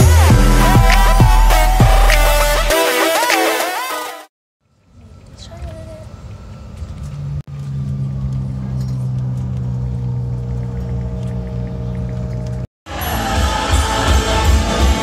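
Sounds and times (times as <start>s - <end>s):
loud festive music: 0.0s - 4.3s, 12.9s - 15.0s
vehicle engine drone in cabin: 5.7s - 12.7s.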